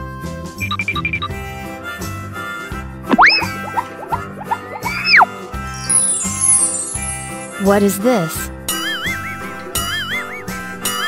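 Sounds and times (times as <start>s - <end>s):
bright children's music: 0.4s - 11.0s
cartoon boing effect: 3.1s - 5.3s
short plucked notes: 3.1s - 6.9s.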